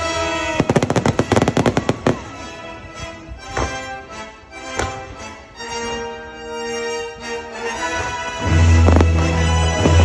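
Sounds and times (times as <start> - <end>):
fireworks bangs: 0.0 - 2.4, 8.7 - 10.0
orchestral music: 0.0 - 10.0.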